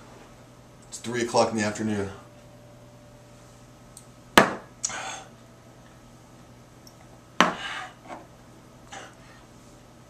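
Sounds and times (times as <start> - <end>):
shot glass knocked on wooden counter: 4.4 - 4.6.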